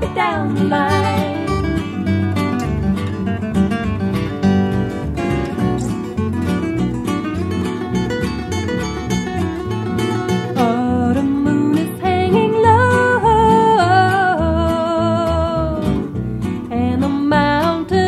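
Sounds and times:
sliding wavering melody line: 0.0 - 2.4
acoustic guitar strumming: 0.0 - 18.0.

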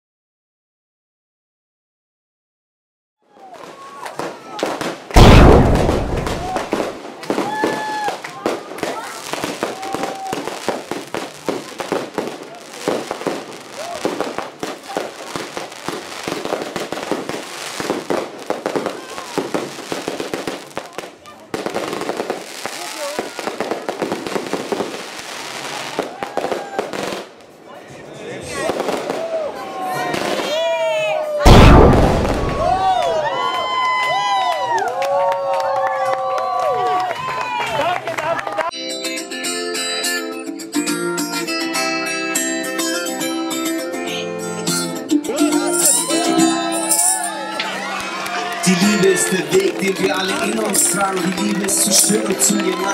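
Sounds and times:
fireworks crackling bangs: 3.4 - 27.6, 31.4 - 33.2, 48.6 - 52.9
loud firework booms: 4.6 - 20.6, 31.4 - 33.1
firework whistles: 45.6 - 47.4.

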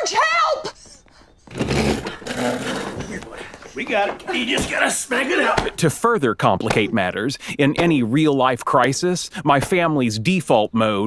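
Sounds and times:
hurried scuffling: 0.0 - 5.9
wooden chair scraping across floor: 1.5 - 3.3.

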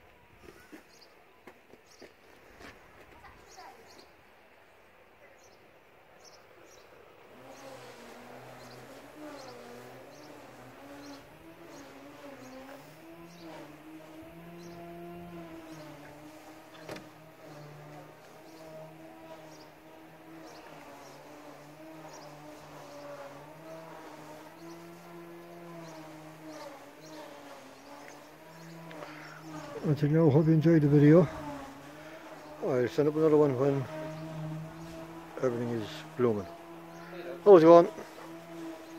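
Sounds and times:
flying insect buzzing: 7.3 - 38.9.

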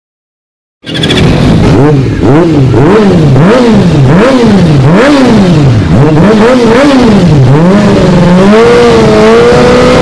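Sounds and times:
motorcycle engine idling and revving: 0.8 - 10.0.

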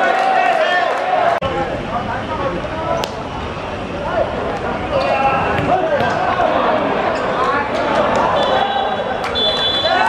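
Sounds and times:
players shouting: 0.0 - 1.4, 4.2 - 10.0.

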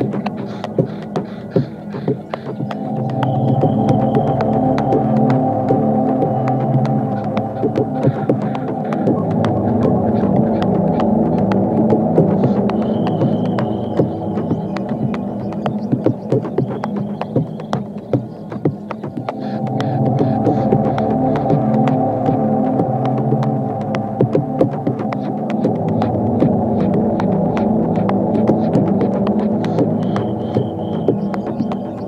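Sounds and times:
layered synth drone: 0.0 - 32.0.

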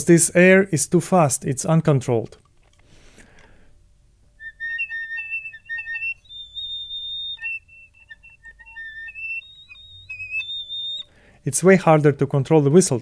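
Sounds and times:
piccolo whistle tones: 4.4 - 11.2.

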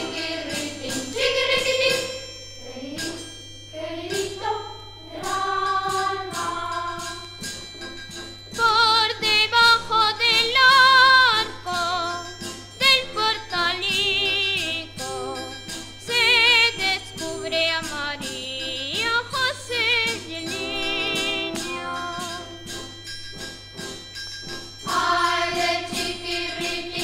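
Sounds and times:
boys' choir singing: 0.0 - 7.3, 20.3 - 22.6, 24.9 - 27.0
rhythmic percussion: 0.0 - 27.0.

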